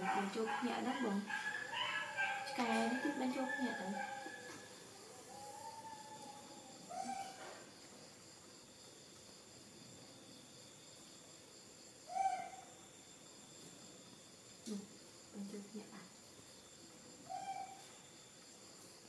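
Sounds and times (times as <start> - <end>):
baby monkey coo calls: 1.0 - 7.5, 12.1 - 12.7, 17.2 - 17.9.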